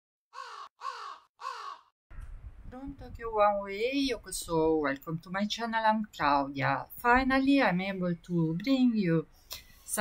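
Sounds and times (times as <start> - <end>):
crow cawing: 0.3 - 1.9.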